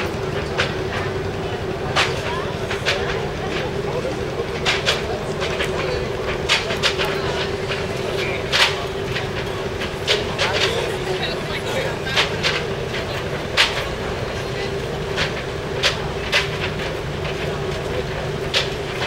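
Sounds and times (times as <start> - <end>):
low machinery hum: 0.0 - 19.0.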